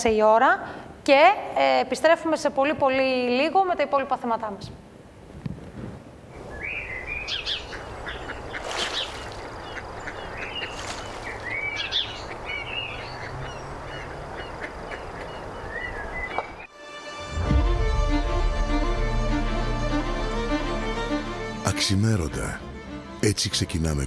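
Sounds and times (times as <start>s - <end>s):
steady background hiss: 0.0s - 16.7s
birds chirping and calling: 6.4s - 16.7s.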